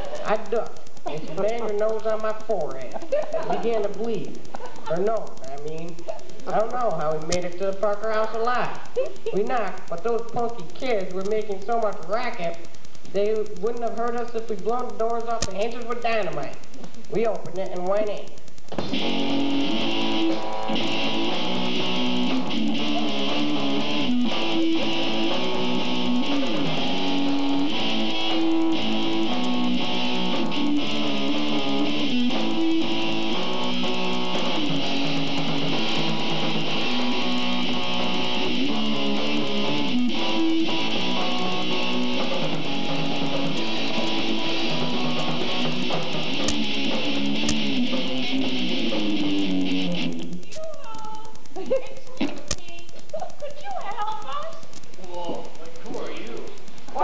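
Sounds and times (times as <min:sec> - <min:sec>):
electric guitar strumming chords: 0:00.0 - 0:50.5
live band music: 0:18.8 - 0:50.2.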